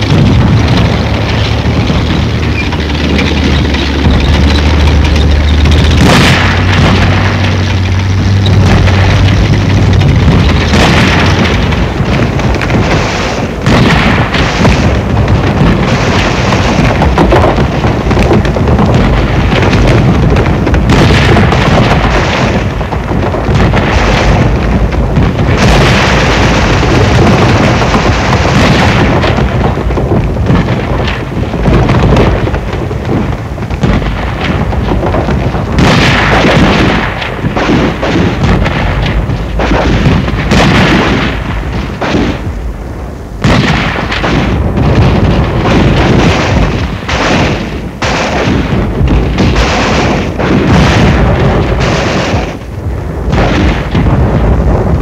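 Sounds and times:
rapid gunfire: 0:00.0 - 0:42.6, 0:43.4 - 0:55.0
explosions and booms: 0:00.0 - 0:55.0.

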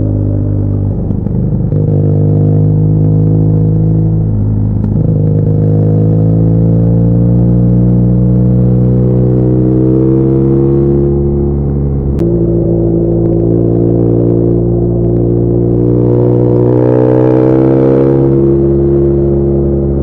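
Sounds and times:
motorcycle engine accelerating: 0:00.0 - 0:20.0.

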